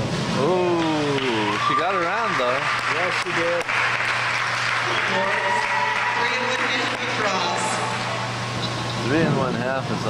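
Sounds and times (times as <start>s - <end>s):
ventilation hum: 0.0s - 10.0s
people talking: 0.4s - 3.7s, 4.9s - 8.0s, 9.0s - 10.0s.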